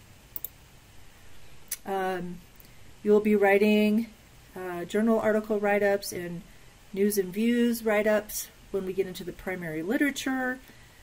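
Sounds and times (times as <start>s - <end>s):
computer mouse clicks: 0.3s - 0.6s.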